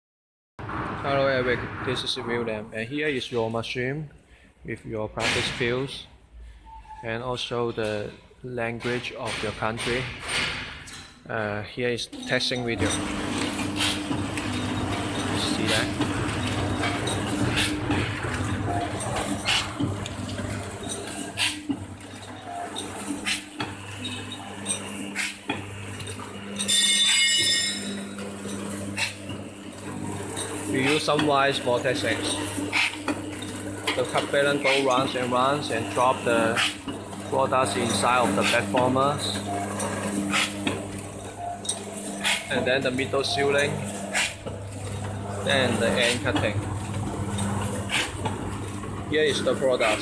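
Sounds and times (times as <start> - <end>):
packing machine hum: 12.1 - 50.0
machine clicks: 27.8 - 50.0
high-pitched buzzing tone: 39.2 - 43.9.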